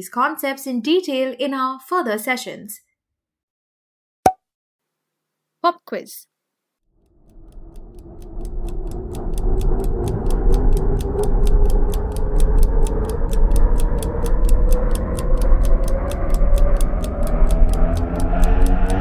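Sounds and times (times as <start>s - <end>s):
clock-like ticking: 7.0s - 19.0s
low rising drone: 7.0s - 19.0s.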